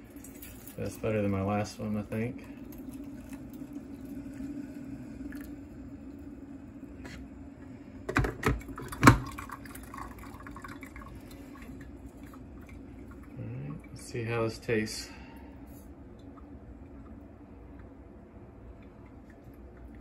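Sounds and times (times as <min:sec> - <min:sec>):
coffee trickling into mug: 0:00.0 - 0:14.1
coffee machine hum: 0:00.0 - 0:20.0.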